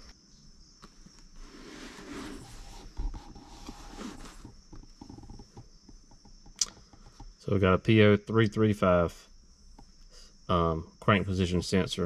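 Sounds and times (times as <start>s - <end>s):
crickets chirping: 0.0s - 12.0s
soft breathy rustling: 1.3s - 5.3s.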